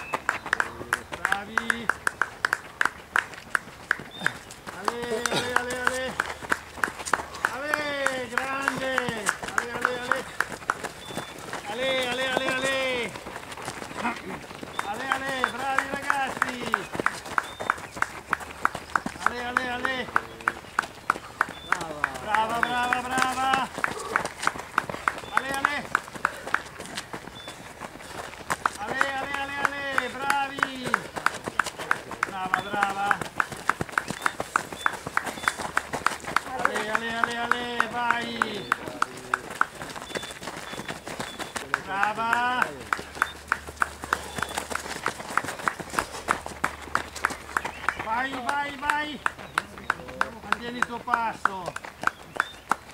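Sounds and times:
sharp rhythmic slaps: 0.0 - 52.9.

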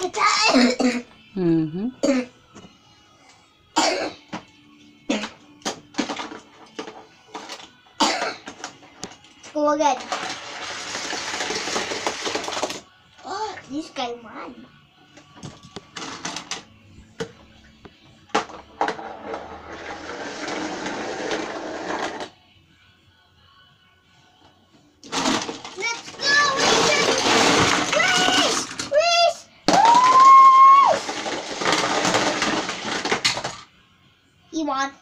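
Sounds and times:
toy cars rattling down plastic track: 9.9 - 12.8, 18.8 - 22.3, 25.1 - 29.0, 29.7 - 33.7.

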